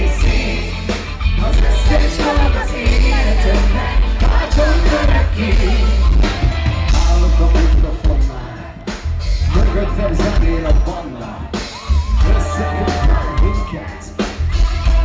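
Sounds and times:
live rock band: 0.0s - 15.0s.

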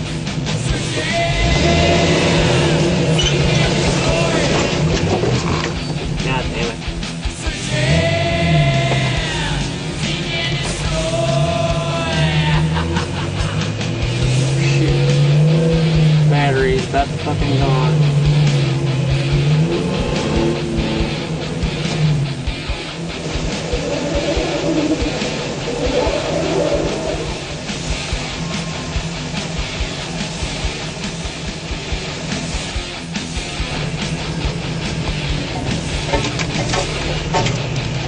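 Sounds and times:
background music: 0.0s - 38.0s
jeep engine droning under load: 0.0s - 38.0s
rattling knocks: 33.6s - 38.0s.

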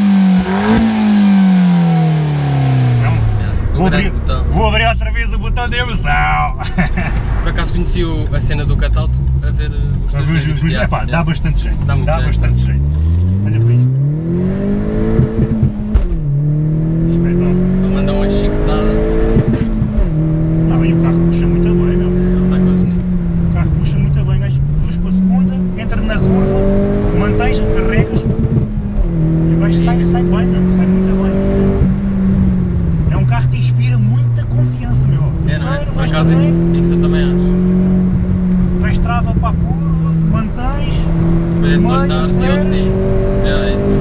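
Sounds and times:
car engine accelerating: 0.0s - 44.0s.

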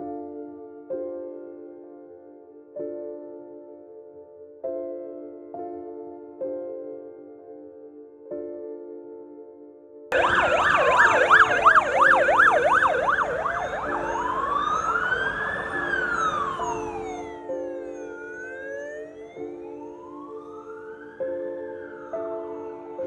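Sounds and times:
soft background music: 0.0s - 23.0s
ambulance siren: 10.1s - 23.0s.

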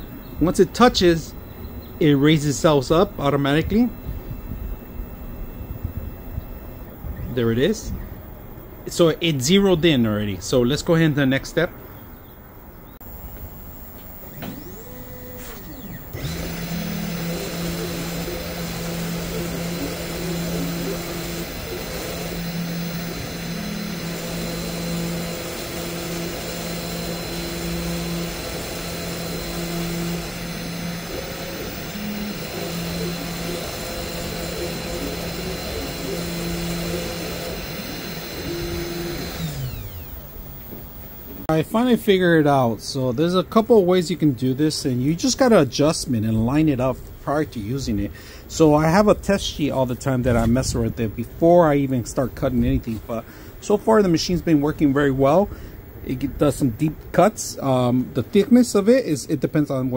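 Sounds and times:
stepper motors humming: 0.0s - 9.0s, 13.0s - 41.5s
spindle motor high whine: 0.0s - 9.6s, 13.0s - 41.5s.

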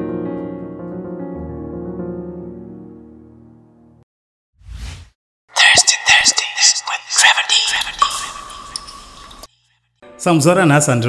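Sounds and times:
loud breathy whispering: 5.6s - 8.2s.

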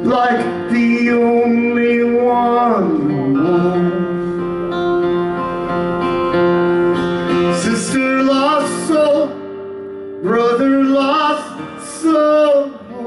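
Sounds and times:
strummed acoustic guitar: 0.0s - 13.0s
man singing held note: 10.6s - 13.0s.

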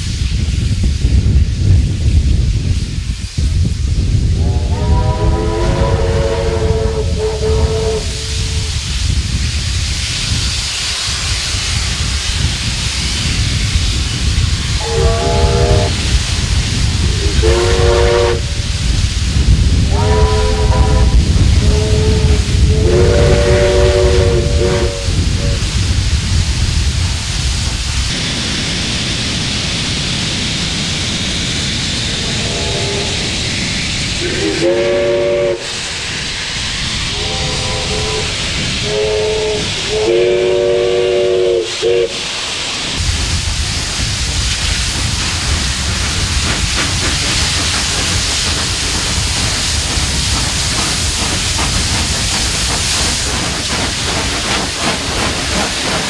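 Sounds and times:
rushing steam hiss: 0.0s - 56.0s
steam locomotive exhaust: 0.0s - 56.0s
steam whistle blasts: 4.4s - 8.8s, 14.8s - 16.2s, 17.0s - 18.8s, 19.9s - 25.6s, 32.2s - 33.5s, 34.2s - 35.8s, 37.0s - 42.4s.

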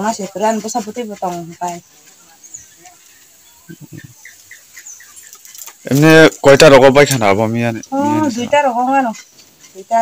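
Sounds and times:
woman talking: 0.0s - 1.8s, 7.9s - 10.0s
faint high bird chirps: 0.2s - 6.0s.

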